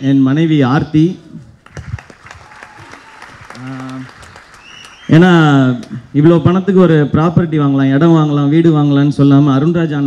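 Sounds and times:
audience applauding: 1.6 - 6.1.

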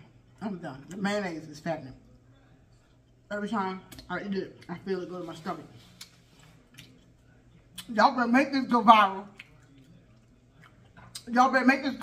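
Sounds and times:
woman's voice: 0.4 - 2.0, 3.3 - 5.9, 7.8 - 9.4, 11.2 - 12.0.

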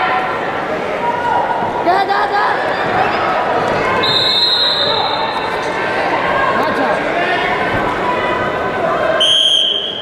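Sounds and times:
echoing voices and chatter: 0.0 - 10.0.

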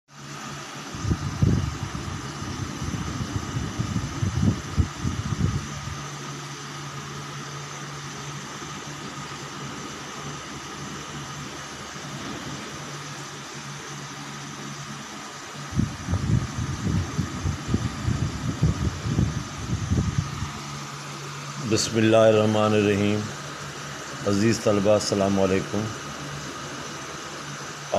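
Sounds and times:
mechanical hum with tones: 0.1 - 27.9.

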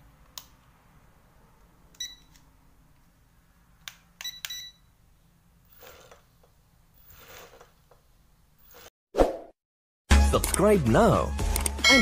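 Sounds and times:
remote control beeping: 4.2 - 4.9.

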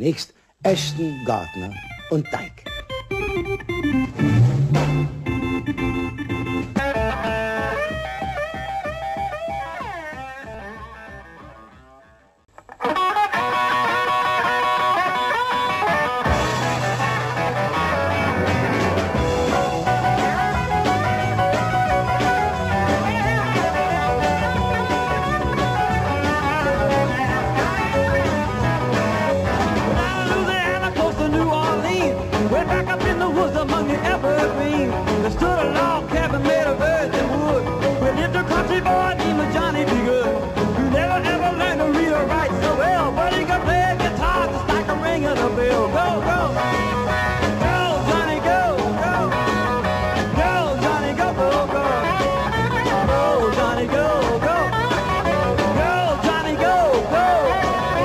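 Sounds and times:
bass: 0.0 - 12.7, 13.4 - 58.0
drums: 0.0 - 58.0
keyboards: 0.0 - 58.0
bending lead melody: 0.7 - 58.0
jazz-influenced rock band: 0.8 - 58.0
wavering melody notes: 0.9 - 7.0.

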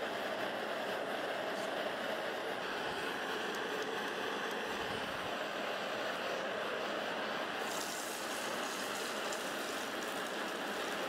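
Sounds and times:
torch burner hissing: 0.0 - 11.0
hot steel sizzling in oil: 7.5 - 11.0.

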